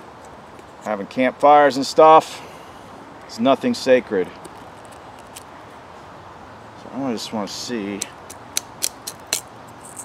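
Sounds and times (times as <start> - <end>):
knife blade cracking dry wood: 8.0 - 9.5.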